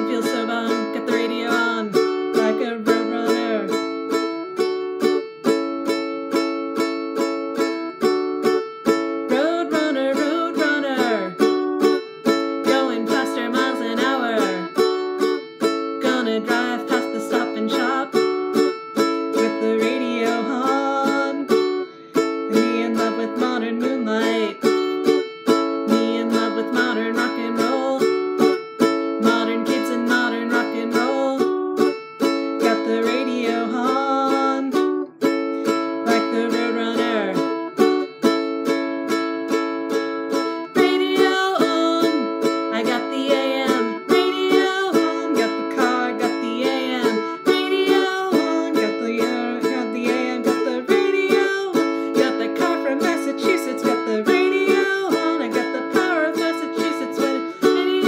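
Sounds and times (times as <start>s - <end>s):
ukulele strumming chords: 0.0s - 58.0s.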